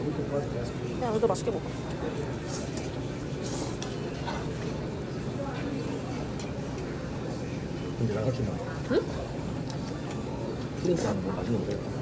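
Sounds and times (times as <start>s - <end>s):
restaurant background noise: 0.0s - 12.0s.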